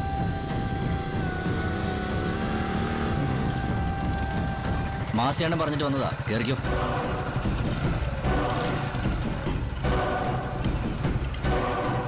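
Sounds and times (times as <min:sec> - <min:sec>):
motorcycle engine idling: 0:00.0 - 0:11.9.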